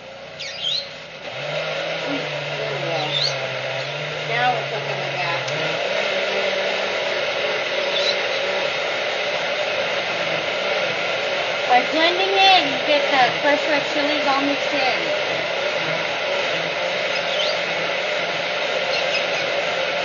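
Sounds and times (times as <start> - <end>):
blender motor running: 0.0 - 20.0
bird chirps: 0.4 - 1.0, 7.9 - 8.5, 17.1 - 17.6, 18.9 - 19.5.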